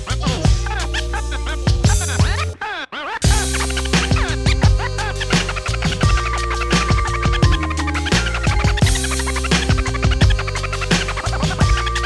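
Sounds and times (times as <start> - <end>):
hip-hop beat with bass: 0.0 - 12.0
vinyl record scratching: 0.0 - 12.0.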